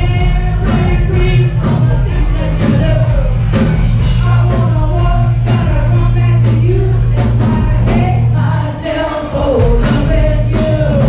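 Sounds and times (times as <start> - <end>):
person singing: 0.0 - 11.0
rock band playing: 0.0 - 11.0.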